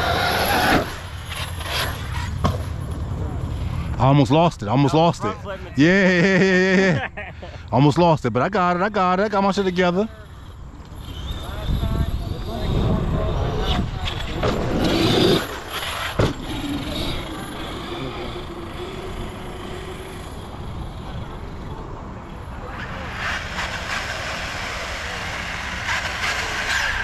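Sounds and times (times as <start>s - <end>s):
rc truck motors and tyres on dirt: 0.0s - 27.0s
wind buffeting microphone: 10.6s - 22.6s.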